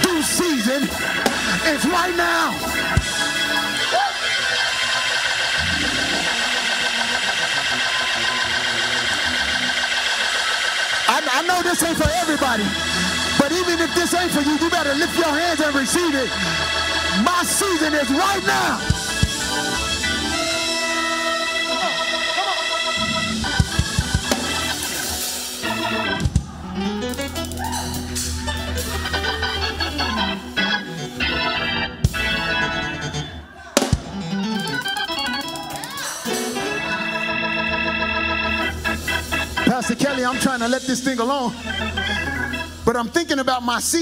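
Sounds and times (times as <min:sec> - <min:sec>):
congregation shouting: 0:00.0 - 0:29.3
keyboard sustained chord: 0:00.0 - 0:33.4, 0:34.0 - 0:43.8.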